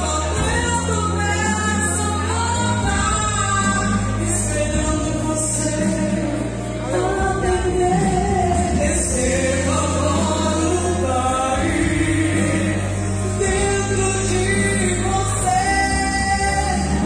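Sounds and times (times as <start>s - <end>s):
instrumental accompaniment: 0.0s - 17.0s
woman singing gospel song: 0.0s - 17.0s.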